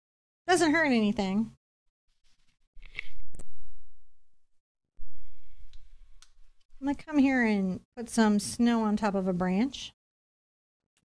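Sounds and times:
woman speaking: 0:00.5 - 0:01.6, 0:06.8 - 0:10.0.

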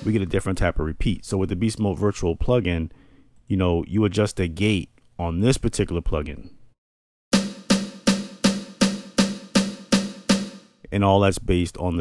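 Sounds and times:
short snare drum hits: 0:00.0 - 0:00.4, 0:07.3 - 0:10.6.

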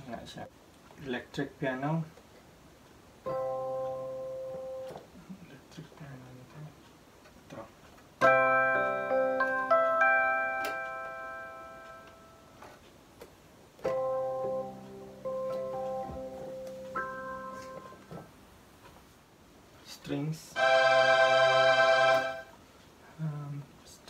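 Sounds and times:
electronic piano chords: 0:03.2 - 0:05.0, 0:08.2 - 0:12.8, 0:13.8 - 0:18.4, 0:20.6 - 0:22.6.

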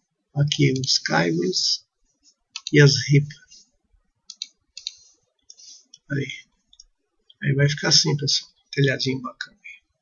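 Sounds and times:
computer mouse clicks: 0:02.5 - 0:02.8, 0:04.3 - 0:06.1.

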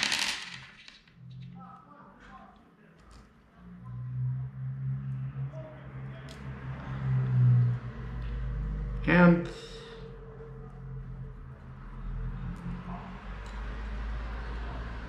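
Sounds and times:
small metal parts clattering: 0:00.0 - 0:01.1.

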